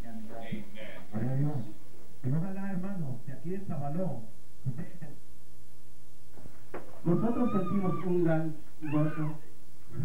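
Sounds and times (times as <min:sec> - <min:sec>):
man speaking over microphone: 0:07.1 - 0:09.4.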